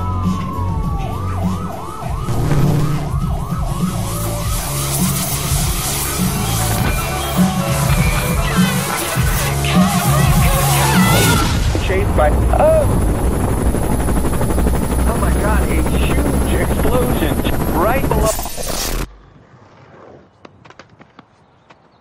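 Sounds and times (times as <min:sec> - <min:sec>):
pulsing mechanical rumble: 0:01.9 - 0:06.8, 0:09.1 - 0:19.1
voices: 0:06.1 - 0:13.0, 0:15.0 - 0:18.6.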